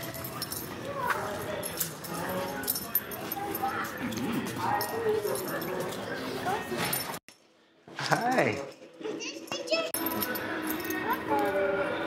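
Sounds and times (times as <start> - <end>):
murmur of indistinct voices: 0.0 - 7.2, 8.8 - 12.0.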